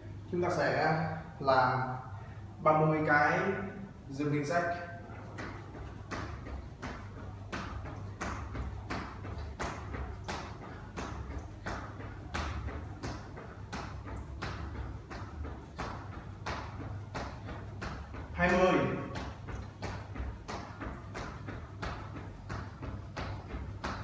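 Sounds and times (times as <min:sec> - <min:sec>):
sneakers landing on tiled floor: 0:05.1 - 0:24.0.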